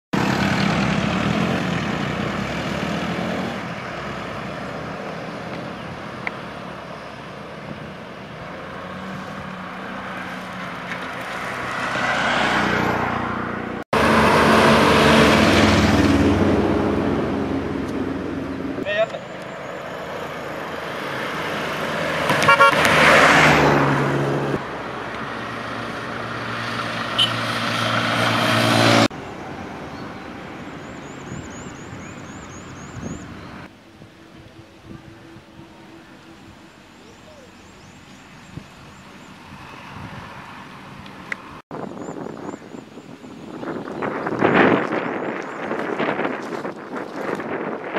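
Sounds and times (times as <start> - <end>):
vehicles passing on road: 0.1 - 47.9
voices: 18.8 - 19.5, 34.2 - 38.1.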